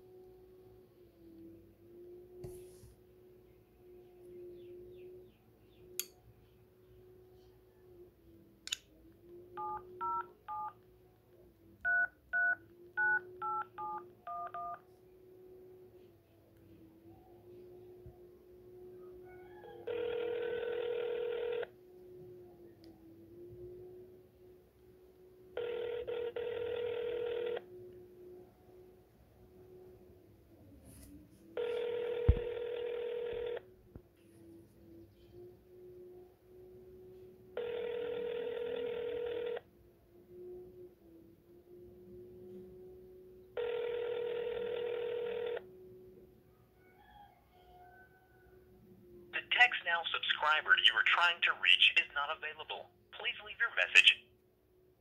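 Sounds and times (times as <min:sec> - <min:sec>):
phone ringback tone: 0:09.6 - 0:10.8, 0:11.9 - 0:14.8, 0:19.7 - 0:21.8, 0:25.6 - 0:27.7, 0:31.6 - 0:33.6, 0:37.6 - 0:39.6, 0:43.6 - 0:45.7.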